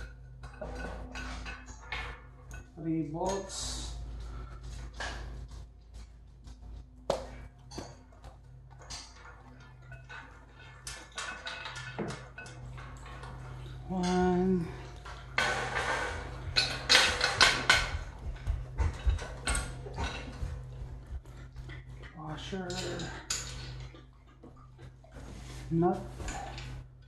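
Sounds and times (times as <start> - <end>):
metal nuts and bolts clinking: 7.7 - 20.8, 21.5 - 24.9.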